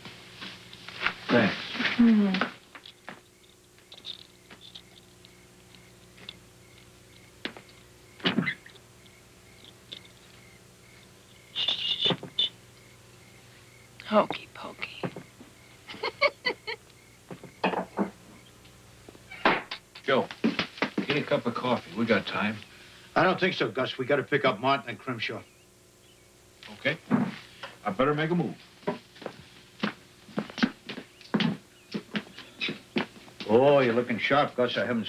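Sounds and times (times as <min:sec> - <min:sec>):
footsteps on hard floor: 0:07.4 - 0:08.5, 0:28.8 - 0:33.5.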